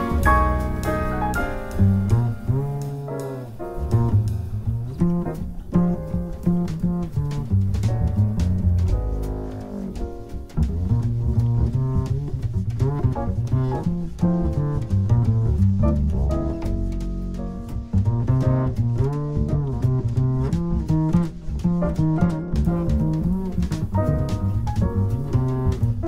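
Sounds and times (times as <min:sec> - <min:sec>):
jazz quartet music: 0:00.0 - 0:26.0
plucked upright double bass: 0:00.0 - 0:26.0.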